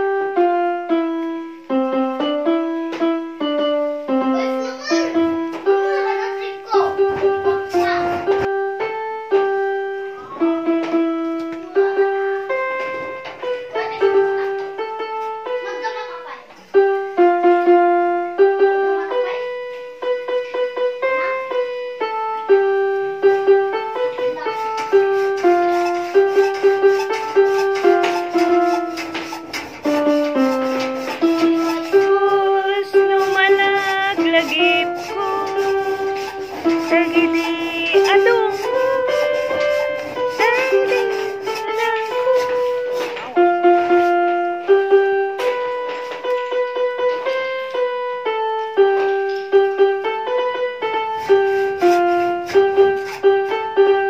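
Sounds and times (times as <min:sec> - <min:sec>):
keyboard melody: 0:00.0 - 0:54.0.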